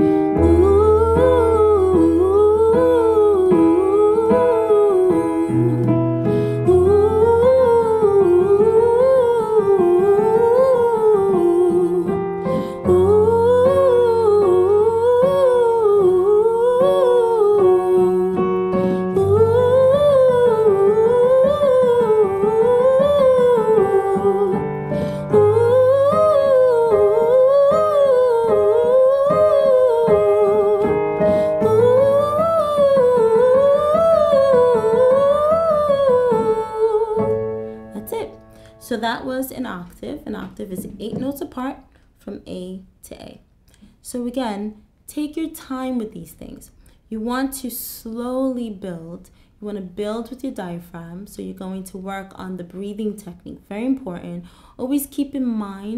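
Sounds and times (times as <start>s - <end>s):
electric keyboard chords: 0.0s - 38.6s
woman singing vocal warm-up: 0.0s - 41.7s.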